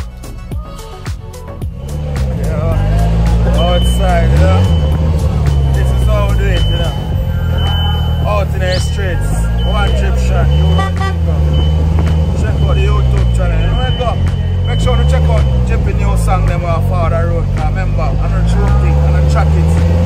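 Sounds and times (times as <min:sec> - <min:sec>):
car engine driving: 0:00.0 - 0:20.0
men talking: 0:00.0 - 0:20.0.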